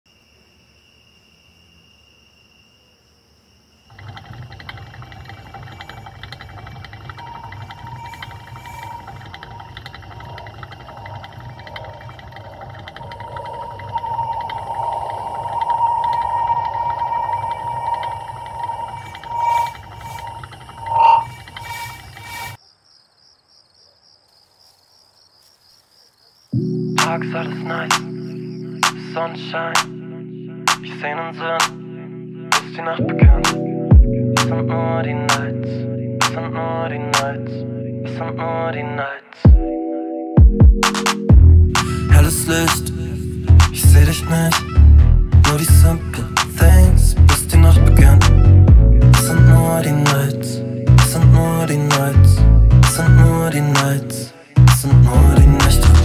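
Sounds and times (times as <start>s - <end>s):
faint high whine: 3.9s - 22.6s
hamster wheel rattling whir: 3.9s - 22.6s
wheel squealing: 3.9s - 22.6s.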